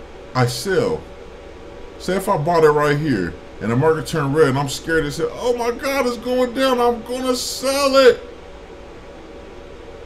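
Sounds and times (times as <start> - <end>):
faint room tone hiss: 0.0 - 10.0
man's voice: 2.0 - 8.3.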